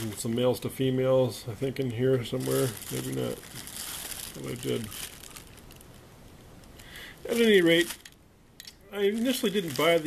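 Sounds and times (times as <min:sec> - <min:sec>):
soft steady hiss: 0:00.0 - 0:10.0
plastic bags crinkling: 0:02.2 - 0:08.2, 0:08.9 - 0:10.0.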